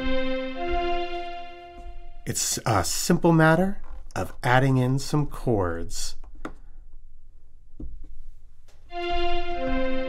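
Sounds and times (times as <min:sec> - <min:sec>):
synth pad chord: 0:00.0 - 0:02.3, 0:08.9 - 0:10.0
faint taps: 0:07.8 - 0:08.9.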